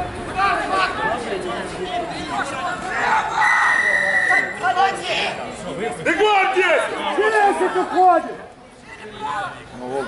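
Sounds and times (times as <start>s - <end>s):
voices of players and spectators: 0.0s - 10.0s
referee's whistle blast: 3.7s - 4.6s.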